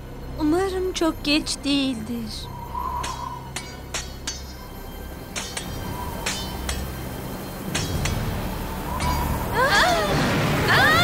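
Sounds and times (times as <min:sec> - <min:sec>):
sustained background score: 0:00.0 - 0:11.0.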